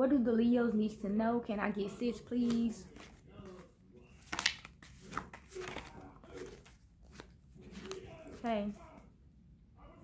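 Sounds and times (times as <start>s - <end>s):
cards being shuffled: 2.2s - 9.0s.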